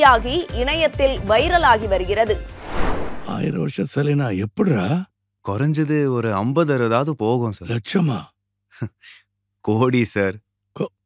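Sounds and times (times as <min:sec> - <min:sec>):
person talking: 0:03.3 - 0:05.0.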